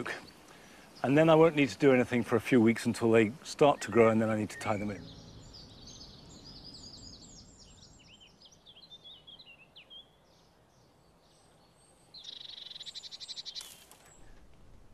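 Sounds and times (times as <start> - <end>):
faint bird chirps: 3.6 - 14.9.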